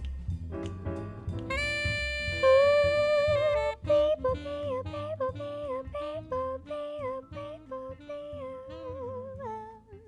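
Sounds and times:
low bass accompaniment: 0.0s - 10.0s
woman humming melody: 1.5s - 10.0s.

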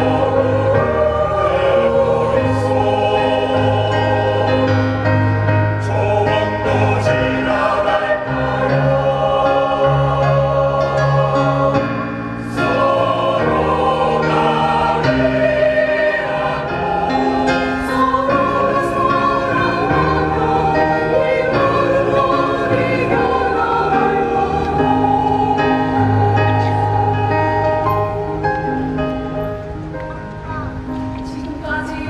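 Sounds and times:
mixed choir singing: 0.0s - 29.9s.

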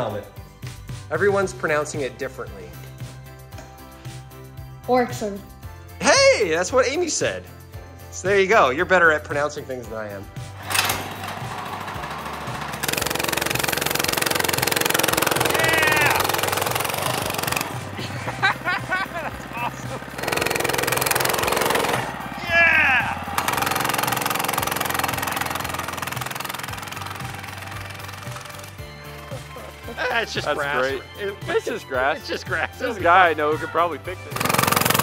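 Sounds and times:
background music: 0.0s - 35.0s
mini bike engine running: 10.6s - 29.4s, 34.3s - 35.0s
brief shouts: 15.5s - 16.2s, 22.4s - 23.3s.

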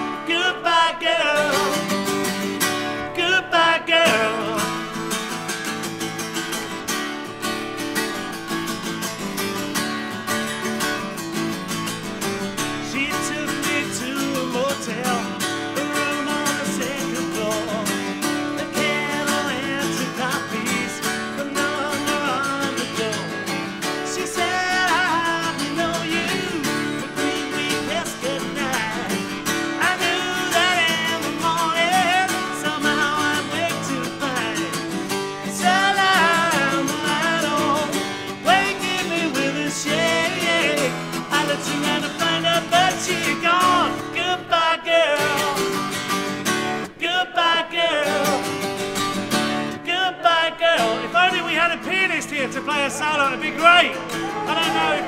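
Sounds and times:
man singing: 0.0s - 5.2s, 12.6s - 45.9s, 46.7s - 48.8s, 49.7s - 55.0s
acoustic guitars strumming: 0.0s - 55.0s.

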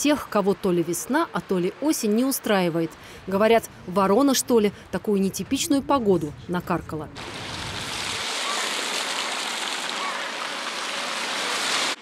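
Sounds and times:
water falling and running: 7.2s - 12.0s.

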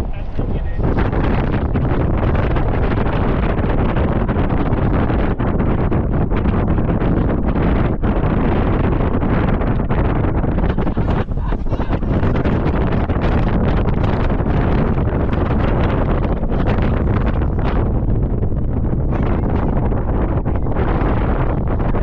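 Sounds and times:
strong wind buffeting microphone: 0.0s - 22.0s.

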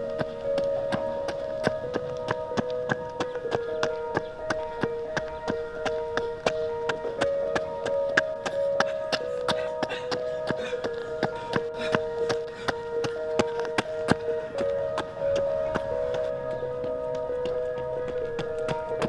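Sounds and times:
sustained held notes: 0.0s - 19.0s.

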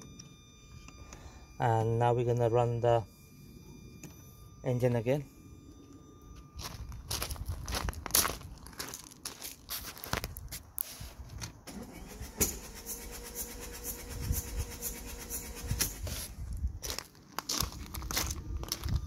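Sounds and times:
footsteps on gravel: 6.4s - 11.3s, 16.1s - 19.0s
starter motor cranking engine: 11.7s - 16.1s.

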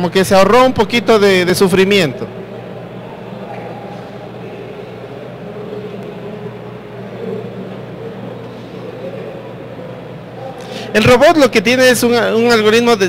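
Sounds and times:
steady low hum: 0.0s - 13.0s
faint indistinct voices: 2.1s - 11.0s.

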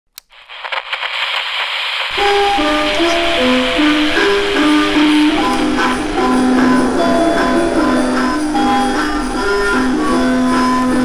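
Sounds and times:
crackling hiss with pops: 0.2s - 11.0s.

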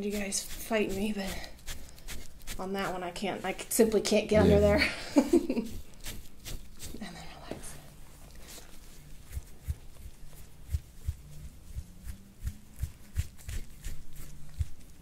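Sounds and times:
metal tool scraping skin: 0.0s - 3.0s.

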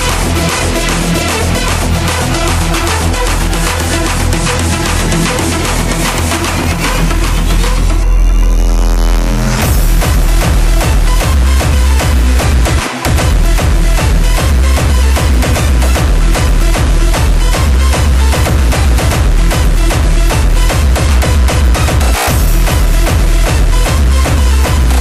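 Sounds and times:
hardstyle dance music: 0.0s - 25.0s
heavy kick drum pounding: 9.6s - 25.0s.

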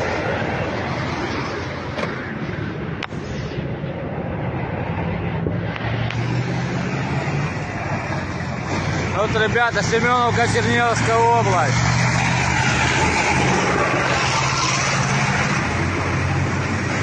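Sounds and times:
car engine hum: 0.0s - 17.0s
road and wind noise: 0.0s - 17.0s.

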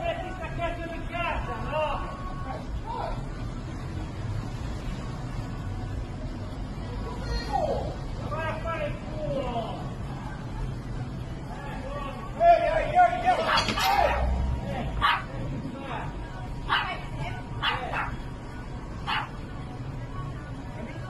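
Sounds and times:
low street hum: 0.0s - 21.0s
people's voices: 0.0s - 21.0s.

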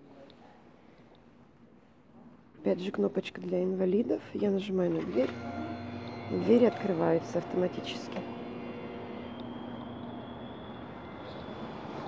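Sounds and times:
faint low hum: 0.0s - 12.0s
distant traffic hum: 6.0s - 12.0s.

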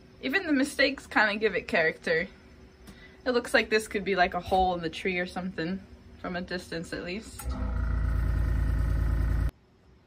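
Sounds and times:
air compressor motor humming: 7.4s - 9.5s.

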